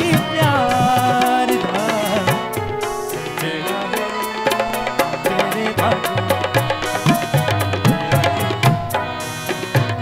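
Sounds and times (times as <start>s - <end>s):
tabla strikes: 0.0s - 3.7s, 4.4s - 10.0s
harmonium melody: 0.0s - 10.0s.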